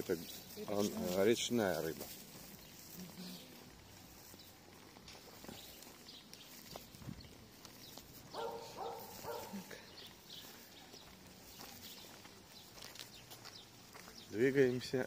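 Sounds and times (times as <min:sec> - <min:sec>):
footsteps on paving stones: 0:00.0 - 0:15.0
quiet street ambience: 0:00.0 - 0:15.0.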